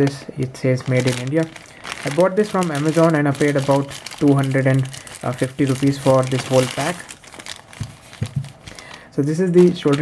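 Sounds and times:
plastic packaging rustling: 0.0 - 10.0.

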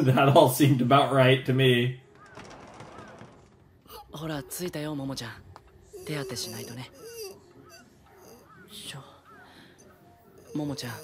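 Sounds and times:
faint bird chirps: 5.8 - 11.0.

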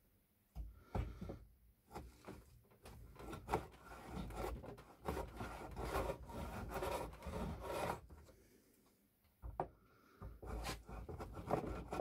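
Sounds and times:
hand plane shaving wood: 2.9 - 8.3, 10.4 - 12.0.

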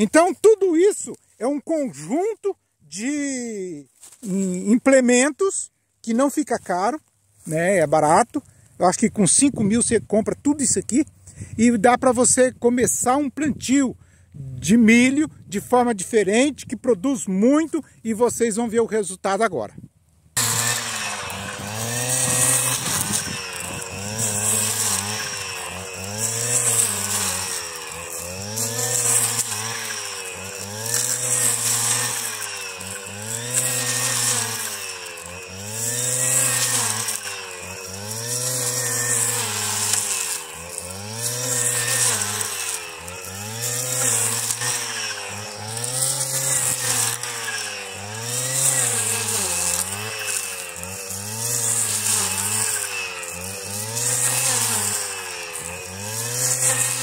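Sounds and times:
brush cutter cutting grass: 0.0 - 57.0.

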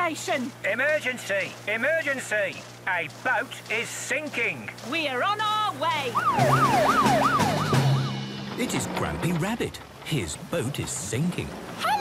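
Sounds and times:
cartoon siren wailing: 6.1 - 8.2.

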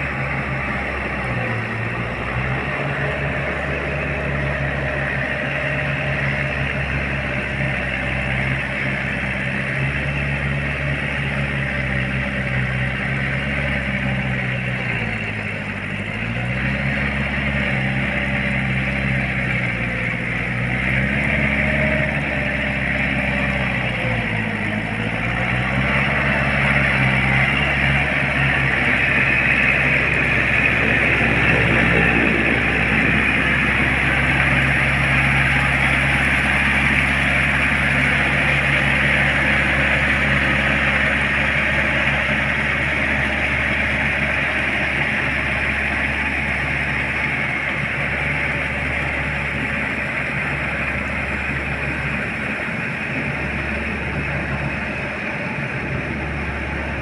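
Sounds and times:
tractor engine running: 0.0 - 57.0.

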